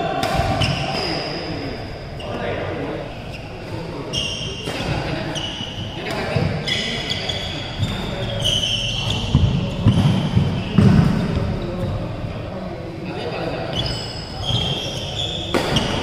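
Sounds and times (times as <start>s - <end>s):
court shoes squeaking: 0.1s - 12.0s, 13.6s - 16.0s
rackets hitting shuttlecock: 15.5s - 16.0s.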